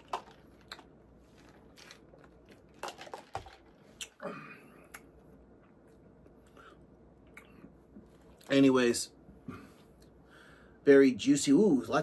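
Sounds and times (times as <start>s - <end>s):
faint chewing with mouth clicks: 4.9s - 8.5s.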